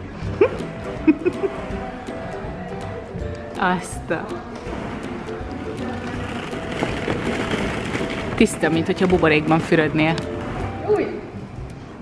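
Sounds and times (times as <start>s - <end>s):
plastic balls clattering: 4.7s - 10.6s.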